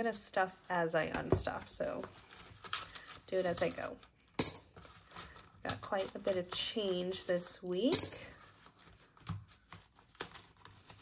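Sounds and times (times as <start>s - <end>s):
coins being handled: 3.5s - 4.8s, 7.8s - 8.3s
coin clinking into pot: 4.4s - 4.6s, 7.8s - 8.2s.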